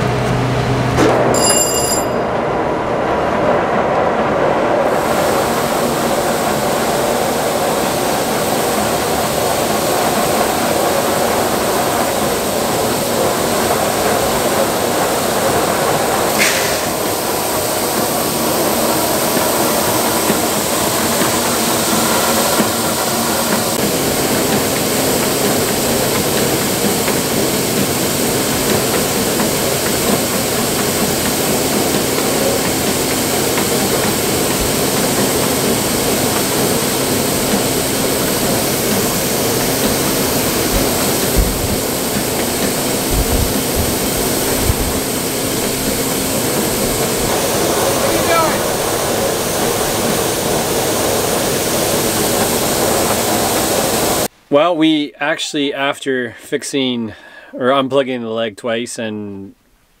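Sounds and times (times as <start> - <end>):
machinery running: 0.0 - 54.3.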